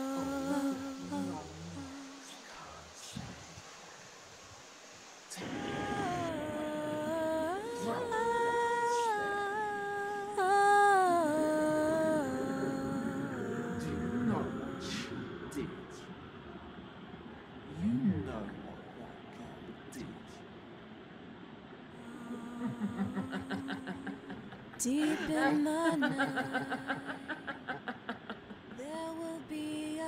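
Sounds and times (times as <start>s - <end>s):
person singing wordless notes: 0.0s - 2.6s, 5.3s - 16.0s, 22.0s - 27.5s
running water rushing: 0.0s - 8.7s.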